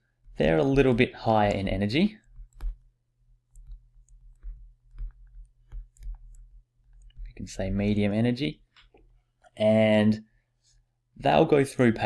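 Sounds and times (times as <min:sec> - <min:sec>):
stylus clicks and taps on screen: 0:01.4 - 0:07.4.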